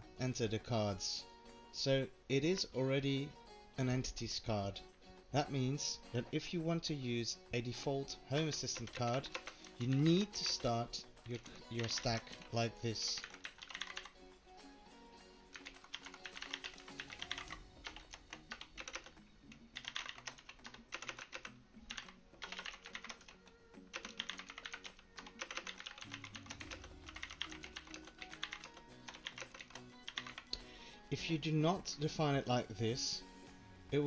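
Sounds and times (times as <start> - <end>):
soft background music: 0.0 - 34.0
keyboard typing: 8.6 - 14.2, 15.5 - 19.2, 19.8 - 30.6.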